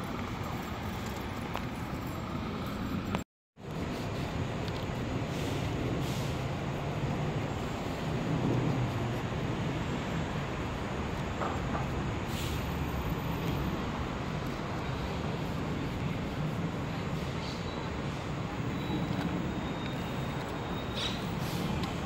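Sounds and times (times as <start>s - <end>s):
street traffic rumble: 0.0s - 22.0s.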